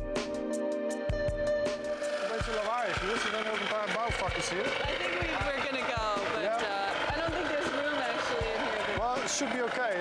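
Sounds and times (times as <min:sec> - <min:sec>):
music with thumping beat: 0:00.0 - 0:03.2, 0:04.0 - 0:09.5.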